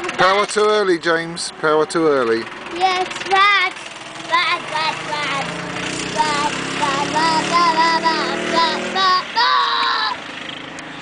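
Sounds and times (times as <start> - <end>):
go-kart engine passing: 0.0 - 11.0.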